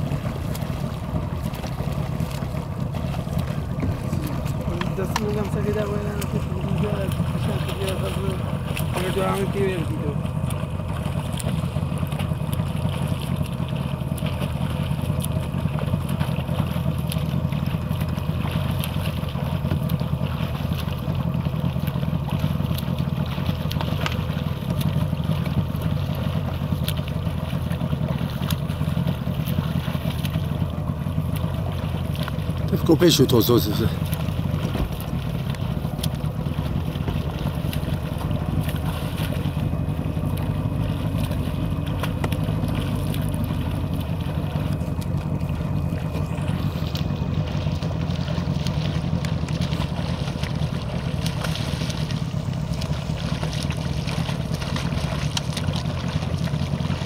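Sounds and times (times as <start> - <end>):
motorboat engine droning: 0.0 - 57.0.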